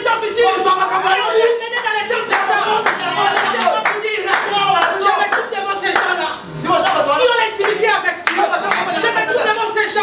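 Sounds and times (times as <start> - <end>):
hands clapping: 1.7 - 9.2.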